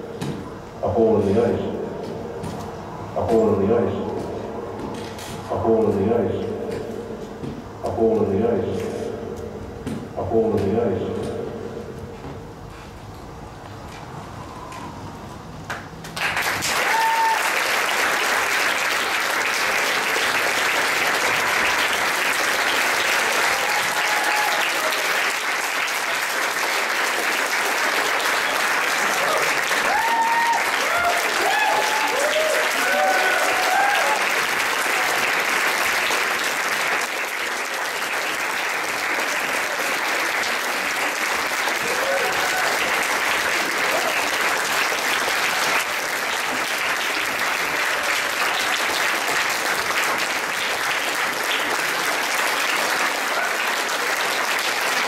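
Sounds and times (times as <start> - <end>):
audience applauding: 15.7 - 55.0
voices calling out and cheering: 29.2 - 34.3.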